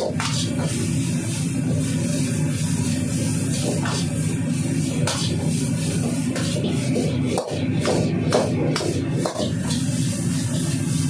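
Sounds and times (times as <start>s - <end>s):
gas burner rushing: 0.0s - 11.0s
noodles stir-fried in wok: 0.0s - 11.0s.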